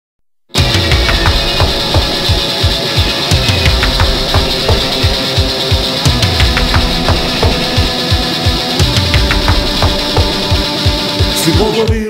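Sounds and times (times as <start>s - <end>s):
distorted heavy rock instruments: 0.5s - 12.0s
fast kick drum beat: 0.6s - 12.0s.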